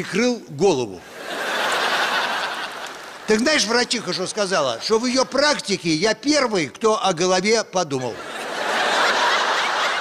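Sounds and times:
studio audience laughing: 1.0s - 5.0s, 8.2s - 10.0s.

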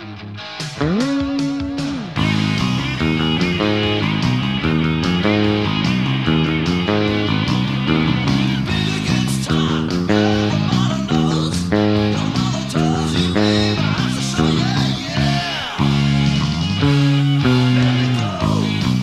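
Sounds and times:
electric bass guitar riff: 0.0s - 19.0s
rock band with drums: 0.0s - 19.0s.

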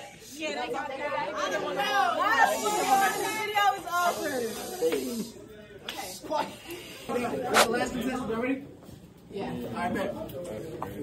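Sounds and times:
excited group chatter: 0.0s - 8.6s.

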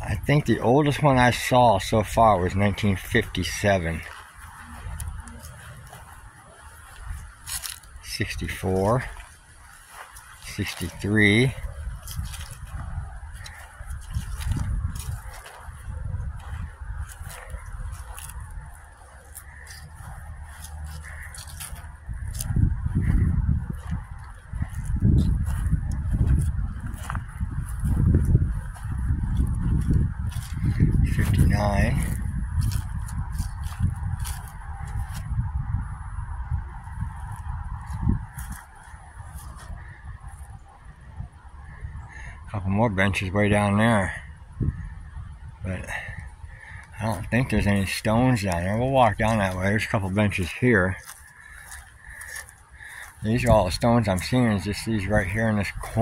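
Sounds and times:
steps on dry grass: 0.0s - 56.0s
wind buffeting microphone: 0.0s - 56.0s.

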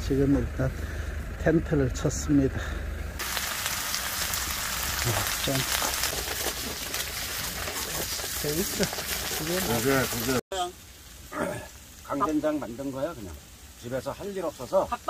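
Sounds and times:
meat and onions sizzling on griddle: 3.2s - 15.0s.

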